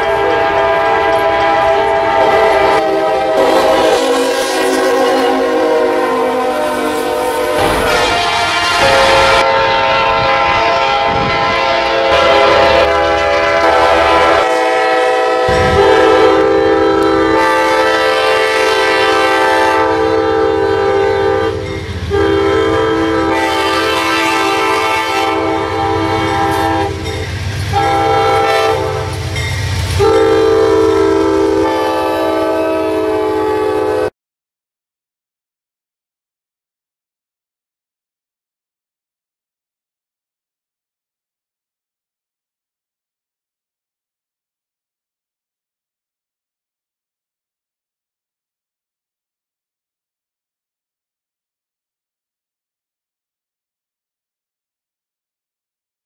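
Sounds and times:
locomotive air horn chords: 0:00.0 - 0:34.1.

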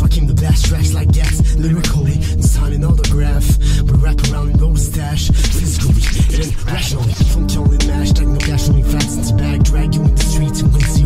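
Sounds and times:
bass line: 0:00.0 - 0:11.0
rapping over a drum beat: 0:00.0 - 0:11.0.

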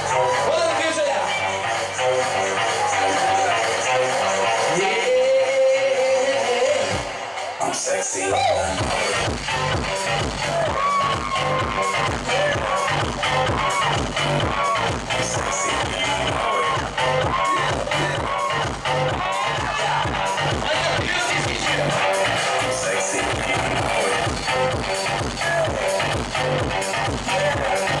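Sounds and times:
loud dance music: 0:00.0 - 0:28.0.

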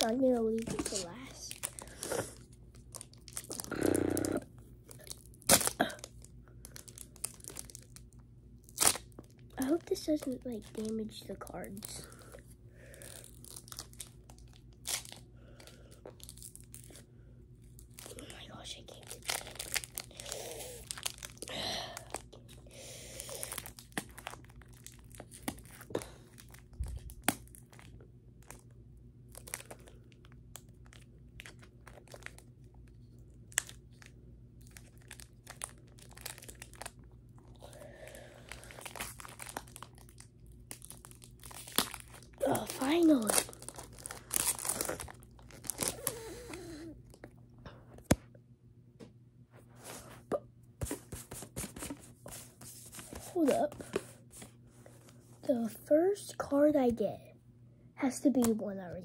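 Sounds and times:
wrapper crackling and tearing: 0:00.0 - 0:17.0, 0:18.9 - 0:28.7, 0:29.3 - 0:46.9.

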